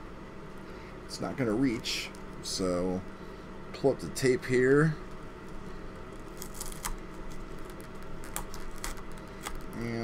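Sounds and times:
steady low hum: 0.0 - 10.0
tape being peeled: 5.4 - 10.0.

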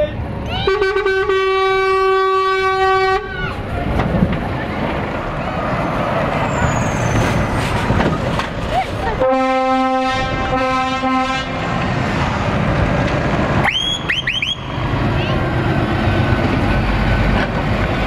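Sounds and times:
diesel truck passing: 0.0 - 18.0
truck horn blast: 0.6 - 3.4, 9.2 - 11.6
rising whistles: 6.4 - 7.6, 13.6 - 14.9.

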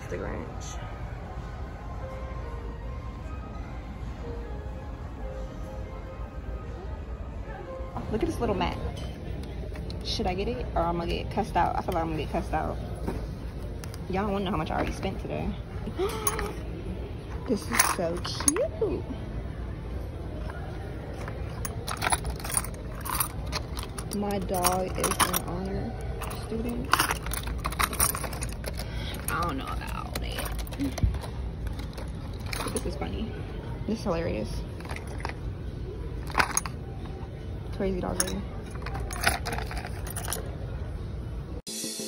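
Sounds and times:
store background noise: 0.0 - 41.8
metal keychain clinking: 15.8 - 16.7, 17.4 - 18.9, 20.4 - 33.3, 34.7 - 35.5, 36.2 - 37.1, 38.0 - 40.6.

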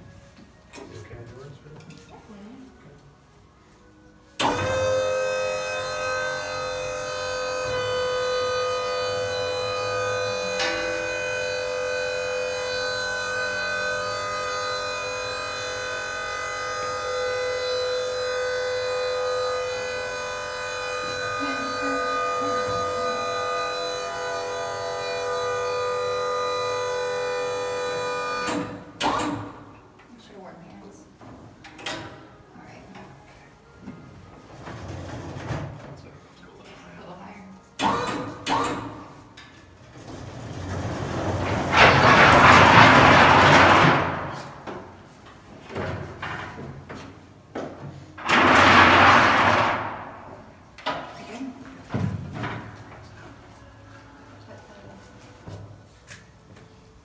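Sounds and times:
lift motor whining: 4.4 - 29.6, 37.8 - 39.0.

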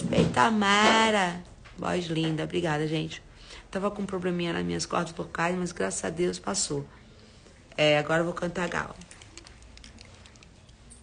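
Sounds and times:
hands handling small objects: 8.6 - 11.0.

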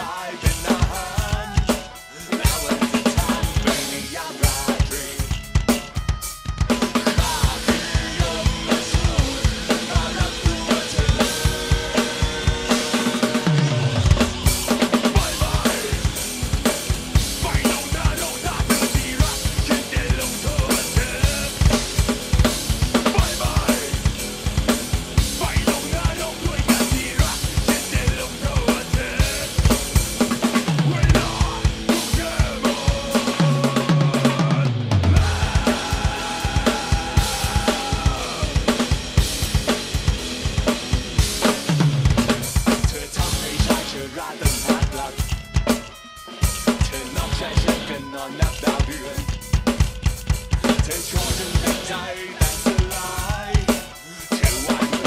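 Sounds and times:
backing track: 0.0 - 55.0
electronic drum kit rock beat: 0.0 - 55.0.

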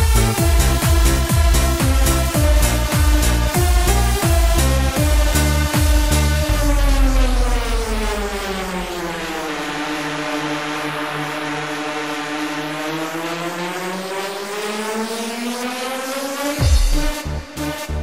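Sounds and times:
electronic dance music: 0.0 - 18.0
buzzy synth tone sliding: 4.6 - 15.0.

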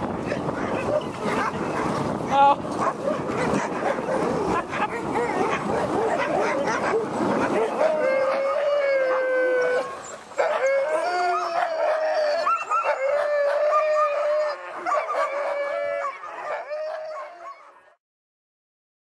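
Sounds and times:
dogs howling together: 0.2 - 1.9, 2.8 - 18.0.

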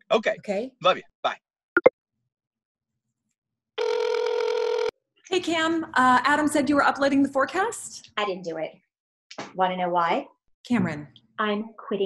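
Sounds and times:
phone ringing tone: 3.8 - 4.9.

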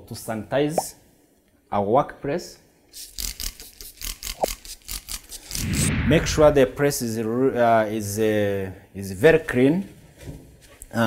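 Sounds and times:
spray bottle spritzing: 3.0 - 5.6.

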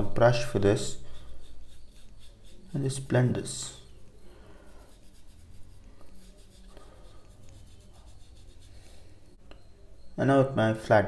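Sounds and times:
paintbrush rubbing on paper: 0.0 - 9.4.

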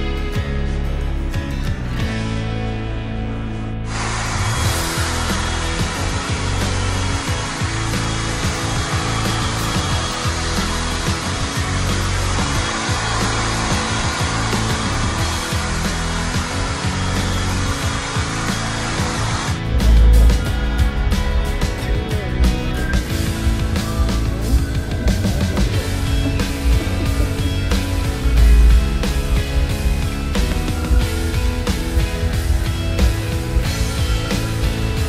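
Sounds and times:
background music: 0.0 - 35.0
hair dryer blowing: 3.8 - 35.0.

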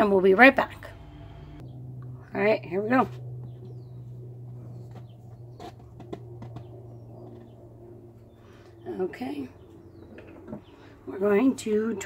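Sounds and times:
steady low room hum: 0.0 - 12.0.

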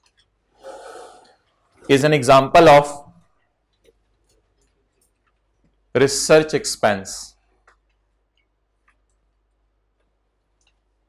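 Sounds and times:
man speaking: 1.8 - 3.1, 6.0 - 7.4.

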